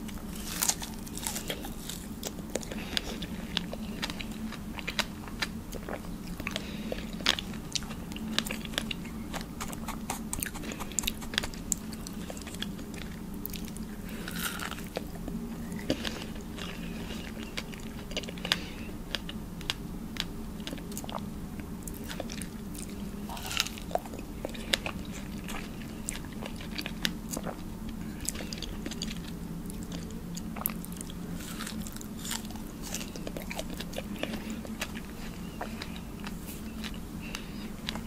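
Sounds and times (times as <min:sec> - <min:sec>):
biting and chewing strawberries: 0:00.0 - 0:38.0.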